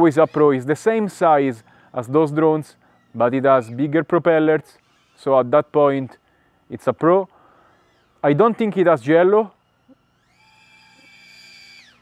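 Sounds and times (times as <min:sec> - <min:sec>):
drone motors whining: 0:00.0 - 0:12.0.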